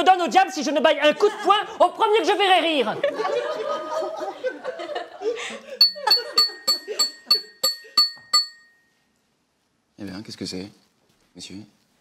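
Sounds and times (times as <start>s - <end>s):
glass being tapped: 5.8s - 9.0s.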